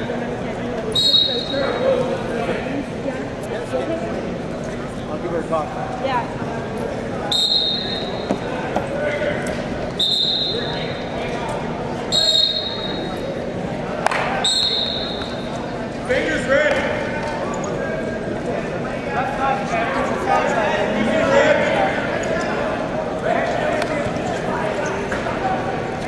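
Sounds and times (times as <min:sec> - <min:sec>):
people talking and shouting: 0:00.0 - 0:26.0
high-pitched whistle blasts: 0:01.0 - 0:01.6, 0:07.3 - 0:08.3, 0:10.0 - 0:10.9, 0:12.1 - 0:13.2, 0:14.4 - 0:15.4.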